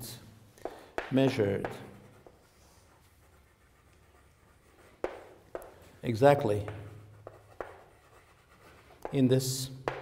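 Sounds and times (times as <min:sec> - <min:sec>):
chalk taps on board: 0:00.6 - 0:02.4, 0:04.7 - 0:10.0
chalk scratching on blackboard: 0:00.7 - 0:10.0.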